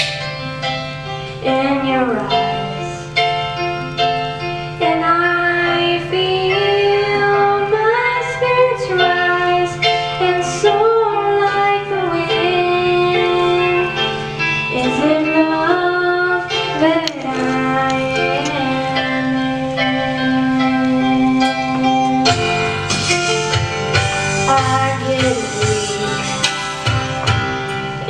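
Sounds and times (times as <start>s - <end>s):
recorded accompaniment music: 0.0s - 28.0s
girl singing into microphone: 1.2s - 3.2s, 4.5s - 22.6s, 24.3s - 26.6s.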